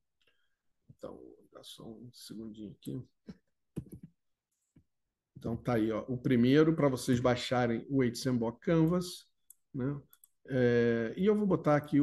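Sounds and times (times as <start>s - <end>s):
faint computer mouse clicking: 8.9s - 10.4s.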